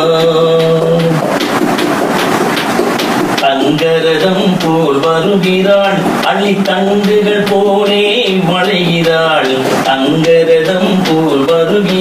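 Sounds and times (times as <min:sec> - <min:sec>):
people clapping: 0:00.0 - 0:12.0.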